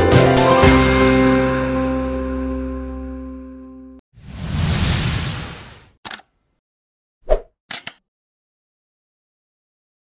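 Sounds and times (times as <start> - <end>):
click sound effects: 7.3 - 8.0.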